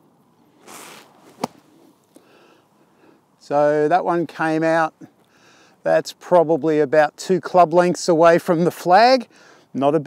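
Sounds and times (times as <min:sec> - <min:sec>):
golf club striking sand: 0:00.6 - 0:02.0.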